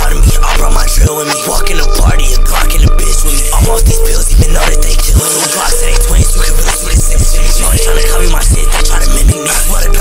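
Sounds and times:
heavy bass: 0.0 - 10.0
hi-hats: 0.0 - 10.0
rapped vocals: 0.0 - 10.0
rapping over a trap beat: 0.0 - 10.0.

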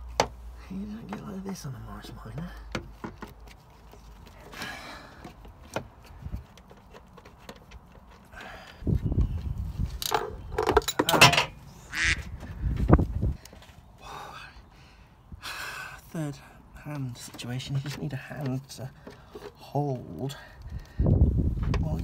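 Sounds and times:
clicks and knocks of car parts: 0.0 - 0.4, 1.0 - 8.8, 10.0 - 11.6, 17.2 - 19.6
thumps and scraping: 1.0 - 11.6, 17.1 - 19.8, 21.5 - 22.0.

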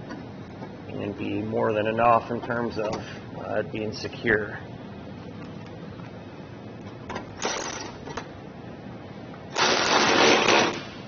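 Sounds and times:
power driver running screw: 9.6 - 10.9.

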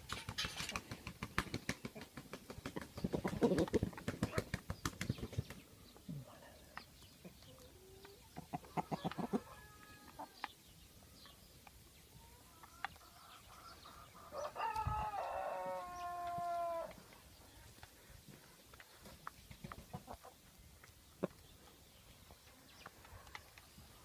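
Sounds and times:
chickens clucking: 0.0 - 15.1, 15.8 - 24.0
rooster crowing: 14.3 - 16.9.

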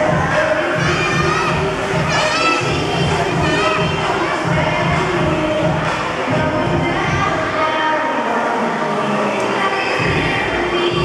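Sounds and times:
mixed voices: 0.0 - 11.0
music: 0.0 - 11.0.

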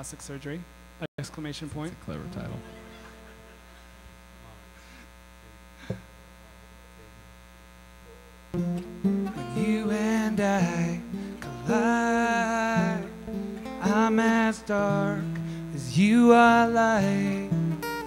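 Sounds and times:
electrical mains hum: 0.0 - 18.0
acoustic guitars playing: 1.7 - 4.1, 8.6 - 18.0.

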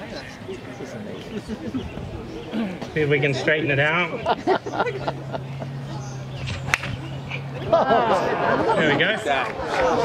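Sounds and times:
golf club striking ball: 6.4 - 7.0.

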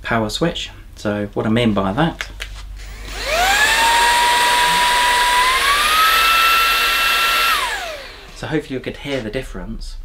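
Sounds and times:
handheld vacuum whining: 2.8 - 8.5
vacuum motor winding down: 2.9 - 8.6.

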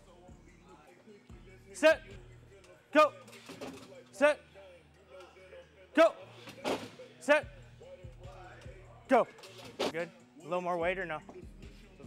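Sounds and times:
faint background music: 0.0 - 12.0
man shouting: 1.8 - 2.1, 2.9 - 3.2, 6.0 - 6.2.

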